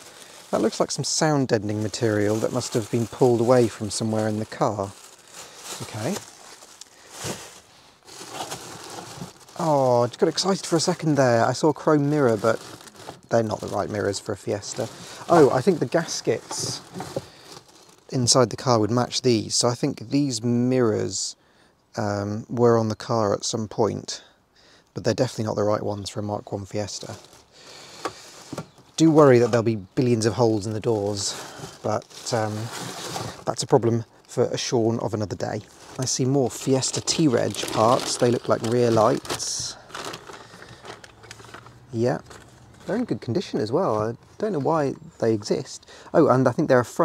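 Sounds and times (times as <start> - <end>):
plastic bags crinkling and rustling: 0.0 - 19.6, 26.0 - 44.8
handling noise: 1.6 - 17.9.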